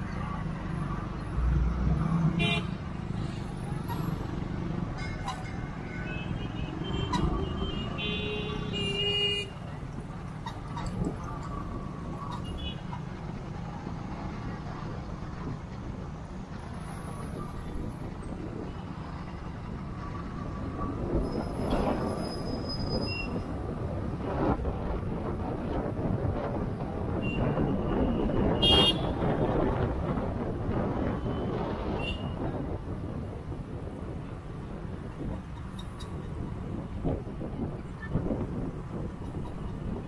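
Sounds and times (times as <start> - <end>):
road traffic rumble: 0.0 - 40.0
vehicle horns honking: 2.4 - 2.8, 5.0 - 9.6, 27.2 - 29.2, 31.2 - 32.4.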